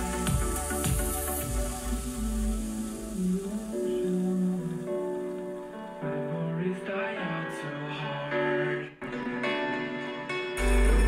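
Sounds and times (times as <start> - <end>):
deep bass beats: 0.0 - 3.6, 10.6 - 11.0
sustained synth chords: 0.0 - 5.0, 10.6 - 11.0
electronic music: 0.0 - 6.4, 9.0 - 11.0.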